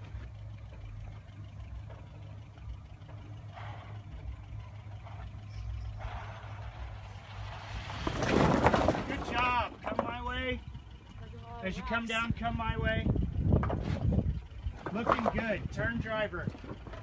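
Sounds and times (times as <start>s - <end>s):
truck engine running low: 0.0s - 17.0s
rough noise: 6.0s - 10.4s.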